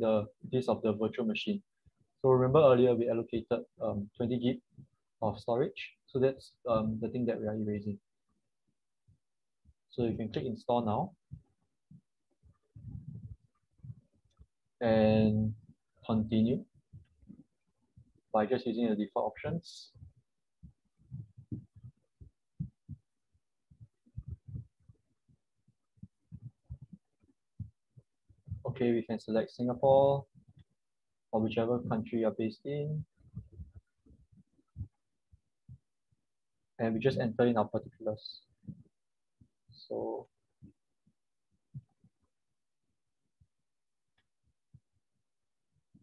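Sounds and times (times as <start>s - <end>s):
soft muffled low thumps: 11.1s - 14.6s, 15.4s - 18.2s, 19.4s - 28.9s, 31.6s - 36.0s.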